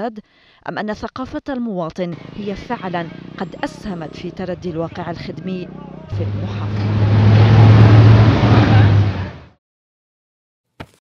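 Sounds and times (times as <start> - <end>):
vehicle engine running: 2.2 - 9.5
rushing noise: 6.1 - 9.5.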